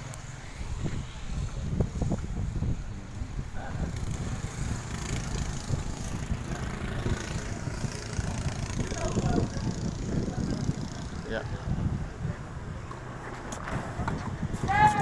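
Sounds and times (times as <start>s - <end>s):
wind rumbling on microphone: 0.0s - 15.0s
faint voices: 3.4s - 15.0s.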